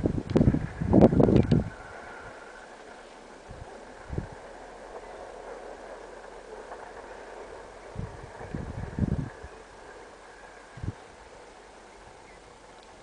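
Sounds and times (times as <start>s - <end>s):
outdoor background hiss: 0.0s - 13.0s
wind buffeting microphone: 0.0s - 13.0s.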